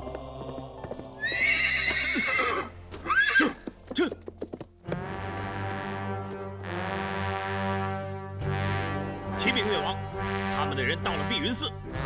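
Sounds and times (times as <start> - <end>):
hooves knocking on ground: 0.0 - 6.9
horse whinnying: 1.2 - 3.7
music with long held chords: 4.8 - 12.0.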